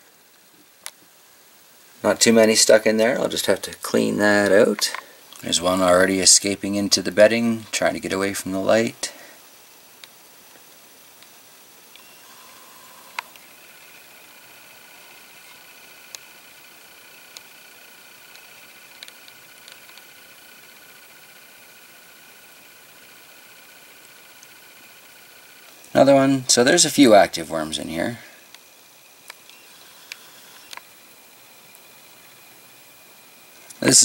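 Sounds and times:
faint hiss: 0:00.0 - 0:34.0
thin high whine: 0:02.0 - 0:09.5, 0:11.1 - 0:34.0
small clicks: 0:18.3 - 0:20.2, 0:29.2 - 0:30.9.

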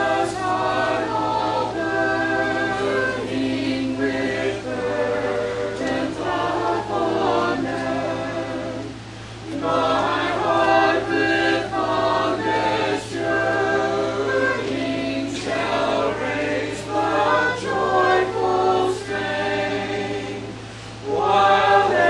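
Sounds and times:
group singing a hymn: 0:00.0 - 0:22.0.

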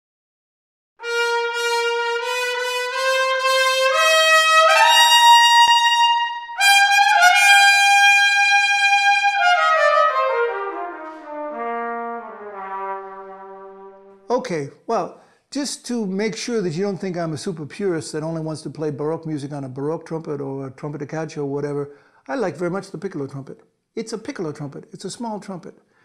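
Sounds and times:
solo trumpet: 0:01.0 - 0:14.3.

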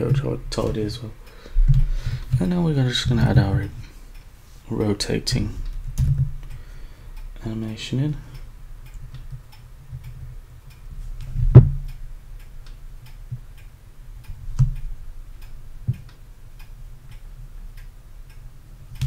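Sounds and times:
steady low hum: 0:00.0 - 0:19.0
sharp knocks: 0:11.4 - 0:11.8.

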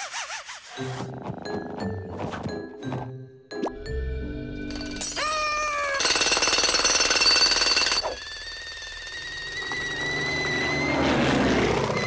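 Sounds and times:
cartoon jackhammer hammering: 0:04.8 - 0:09.9
whining tone dropping in pitch: 0:08.2 - 0:12.0.

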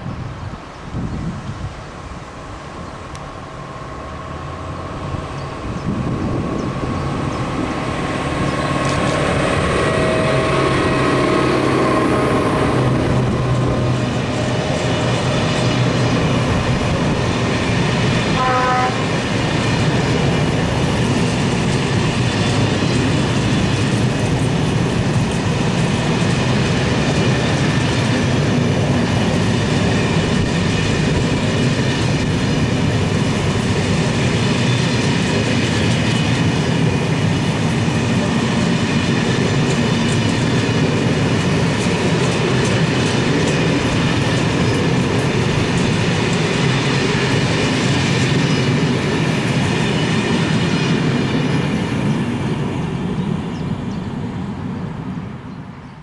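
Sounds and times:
train wheels on rails: 0:00.0 - 0:56.0.

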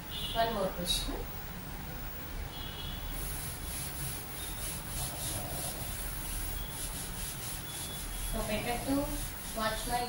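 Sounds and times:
duster rubbing on blackboard: 0:03.0 - 0:10.0.

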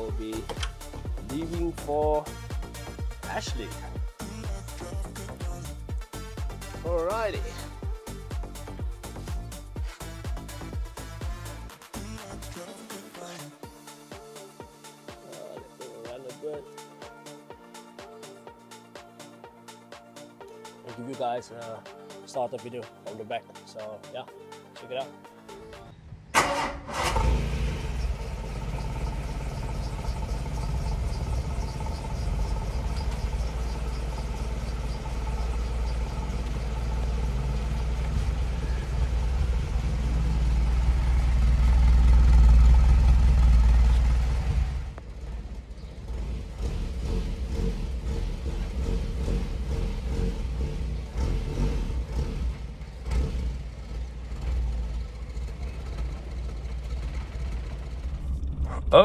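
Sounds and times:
car engine cranking and starting: 0:00.3 - 0:02.0, 0:26.2 - 0:59.0
car engine running at tailpipe: 0:27.2 - 0:58.8.

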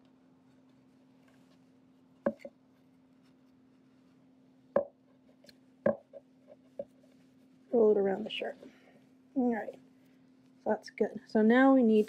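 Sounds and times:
faint steady hum: 0:00.0 - 0:12.0
wooden knocks on tabletop: 0:05.8 - 0:06.2.

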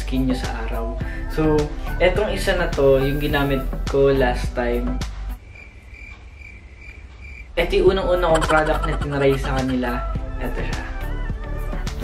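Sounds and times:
cricket chirping: 0:05.3 - 0:07.6, 0:08.2 - 0:09.8.

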